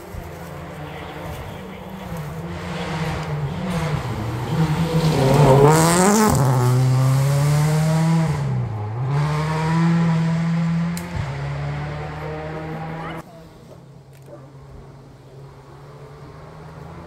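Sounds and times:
rally car engine revving: 0:00.4 - 0:13.3, 0:15.4 - 0:17.0.

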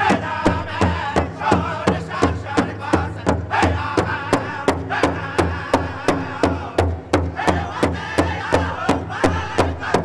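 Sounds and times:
group chanting high melody: 0:00.0 - 0:10.0
large drum beating: 0:00.0 - 0:10.0.

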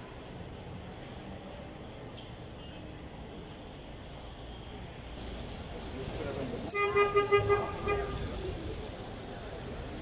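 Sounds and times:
street traffic hum: 0:00.0 - 0:10.0
car horn toot: 0:06.7 - 0:08.3.

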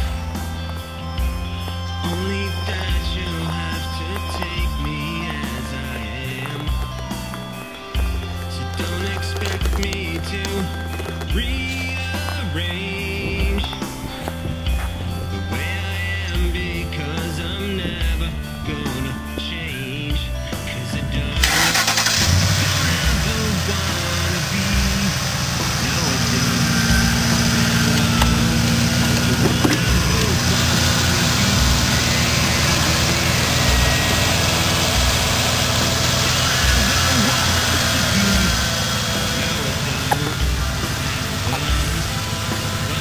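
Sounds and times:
truck engine idling: 0:00.0 - 0:43.0.

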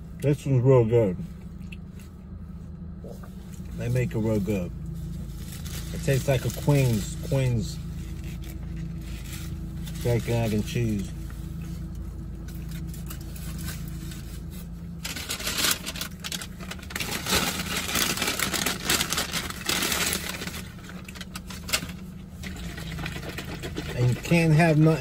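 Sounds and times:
steady low hum: 0:00.0 - 0:25.0
paper bag rustling: 0:12.6 - 0:24.4.

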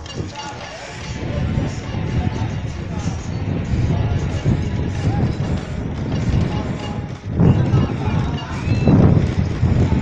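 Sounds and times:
music: 0:00.0 - 0:10.0
voices: 0:00.0 - 0:10.0.

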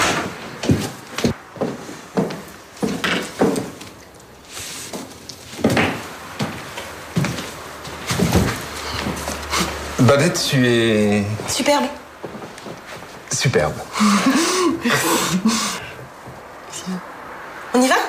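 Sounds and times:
knocks and thuds: 0:08.1 - 0:09.3.

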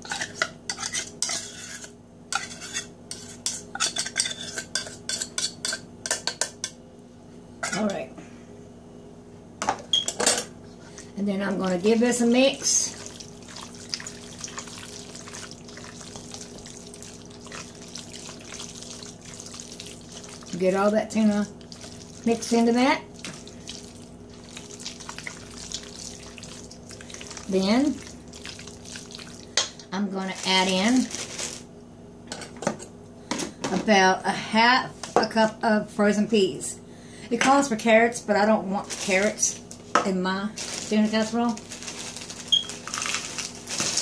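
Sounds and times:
utensil scraping metal bowl: 0:00.0 - 0:05.9
plastic bag crinkling: 0:30.2 - 0:31.7, 0:38.8 - 0:39.9, 0:40.5 - 0:44.0.

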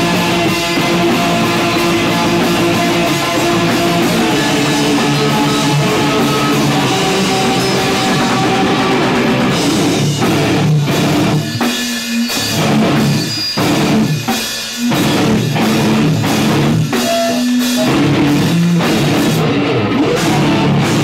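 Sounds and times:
distorted electric guitar: 0:00.0 - 0:21.0
drum kit pounding: 0:00.0 - 0:21.0.

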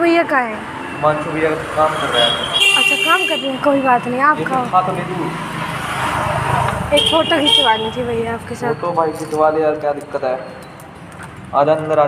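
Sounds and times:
road vehicle passing: 0:00.0 - 0:12.0.

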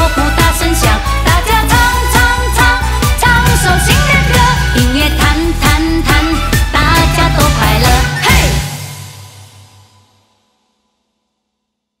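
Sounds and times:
song music: 0:00.0 - 0:09.4.

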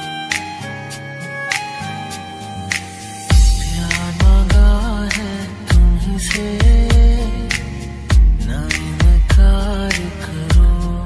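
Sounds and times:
heavy bass beats: 0:01.5 - 0:11.0.

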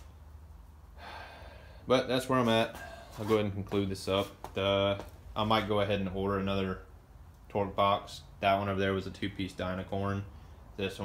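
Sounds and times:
man breathing in: 0:00.9 - 0:01.9, 0:02.7 - 0:03.2
man speaking: 0:01.9 - 0:06.9, 0:07.5 - 0:11.0.

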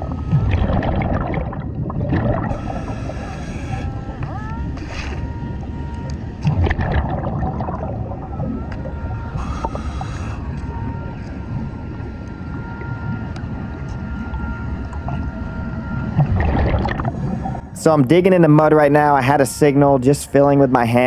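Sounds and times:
exhaled bubbles hissing: 0:00.0 - 0:05.3, 0:06.0 - 0:14.4, 0:15.0 - 0:17.9
underwater rumble of breathing gear: 0:00.0 - 0:18.8.

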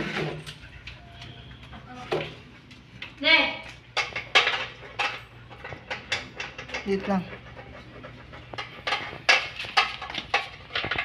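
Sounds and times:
dog eating: 0:00.0 - 0:11.0.

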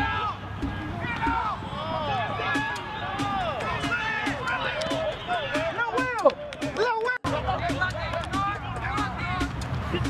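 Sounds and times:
voices shouting: 0:00.0 - 0:09.4
crowd noise: 0:00.0 - 0:10.0.

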